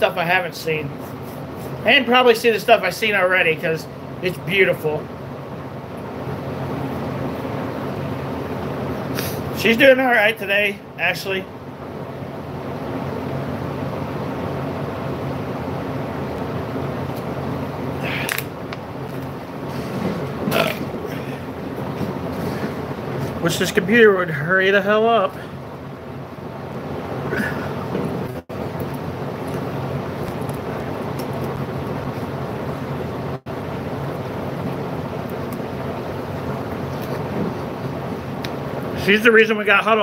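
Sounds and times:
steady low hum: 0.0 - 40.0
person burping: 20.5 - 21.4.

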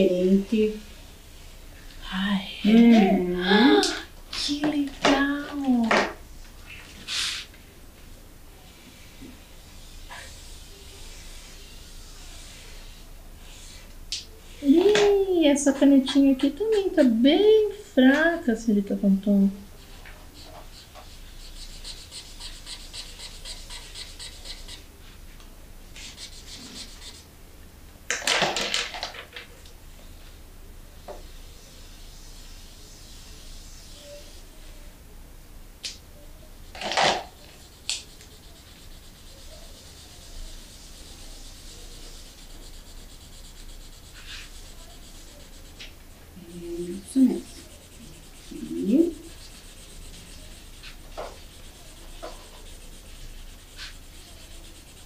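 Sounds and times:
markers scratching on paper: 9.8 - 13.9, 16.0 - 17.2, 19.8 - 24.9, 26.0 - 27.3, 36.6 - 55.0.

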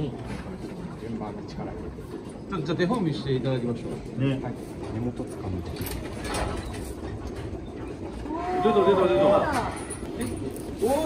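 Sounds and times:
milking equipment clatter and hum: 0.0 - 11.0.

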